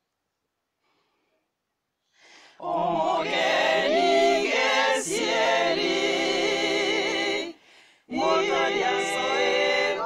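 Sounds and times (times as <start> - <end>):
woman singing a cappella harmony: 2.6 - 10.0.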